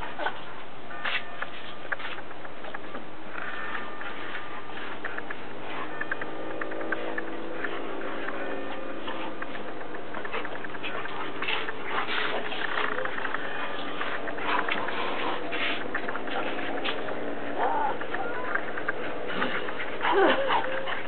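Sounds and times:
dogs scuffling on grass: 0.0 - 21.0
dog whining: 17.5 - 21.0.

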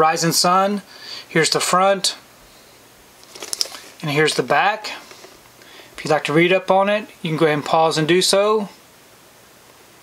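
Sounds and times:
plastic shrink-wrap crinkling: 3.2 - 4.0.

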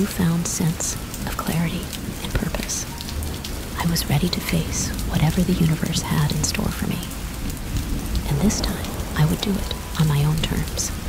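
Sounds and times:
steady rain falling: 0.0 - 11.0.

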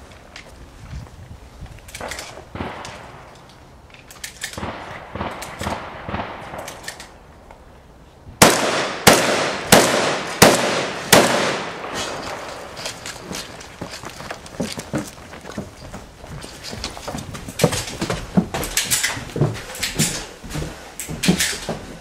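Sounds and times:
rifle shots with echo: 2.5 - 3.3, 4.6 - 7.0, 8.4 - 12.7.

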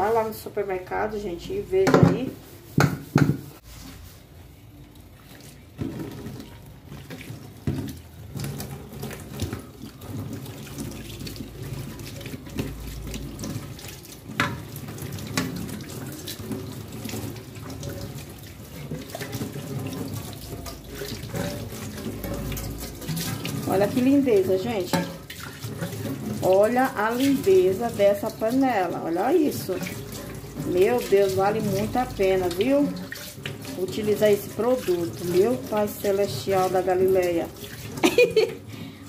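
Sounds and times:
baking pan being scrubbed: 0.9 - 4.6, 5.7 - 38.6
pan knocking against sink: 1.8 - 3.6, 24.7 - 26.4
tap water splashing into sink: 5.3 - 38.9.

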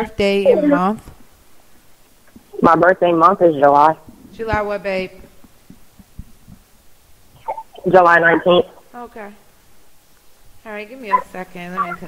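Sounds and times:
voices: 0.0 - 1.2, 2.3 - 6.7, 7.3 - 9.4, 10.6 - 12.0
faint low thumps: 0.5 - 8.9.

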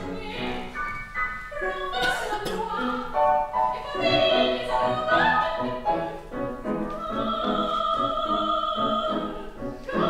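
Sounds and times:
operatic soprano singing: 0.0 - 10.0
piano accompaniment: 0.0 - 10.0.

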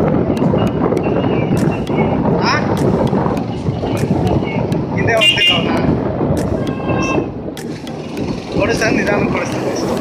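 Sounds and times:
motorcycle road noise: 0.0 - 10.0
wind rushing over microphone: 0.0 - 10.0.

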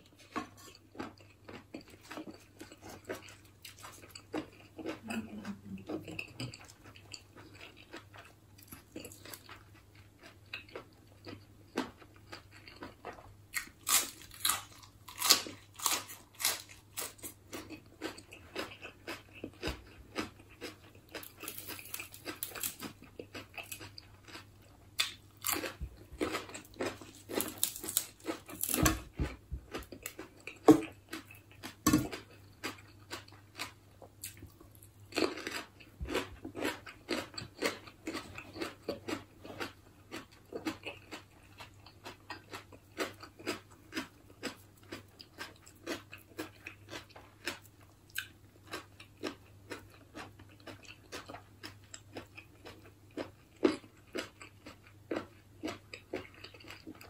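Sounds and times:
person chewing crunchy vegetables: 0.0 - 57.0.

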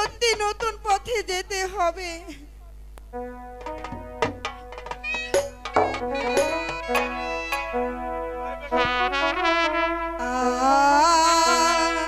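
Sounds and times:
wind instrument melody: 3.2 - 10.9
sharp drum strikes: 3.6 - 7.8.

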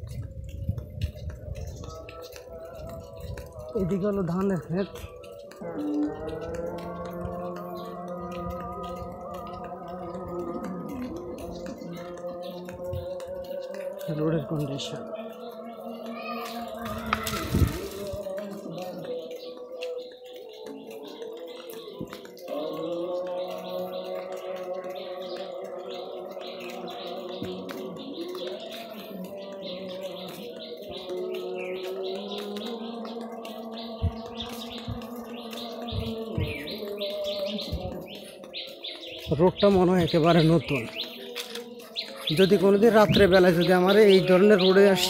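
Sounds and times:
birds chirping faintly: 0.0 - 45.0
slow tune of long held notes: 0.0 - 45.0
short scuffing noise: 16.8 - 18.3.

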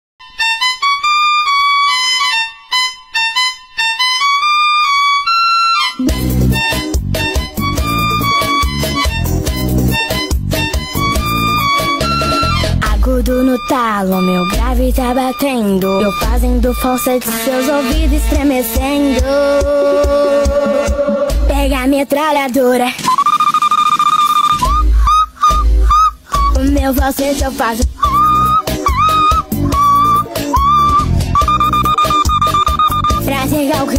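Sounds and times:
high lead melody of held notes: 0.2 - 21.0, 23.2 - 33.9
heavy bass beat: 6.0 - 17.1, 24.6 - 33.9
girl singing falsetto: 12.2 - 17.5, 24.6 - 31.1.

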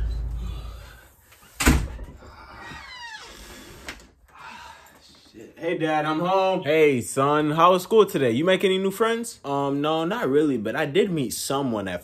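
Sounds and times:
deep rumble: 0.0 - 1.0.

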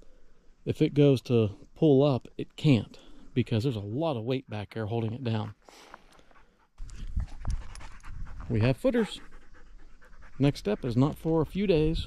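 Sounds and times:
dog panting: 6.2 - 11.9.

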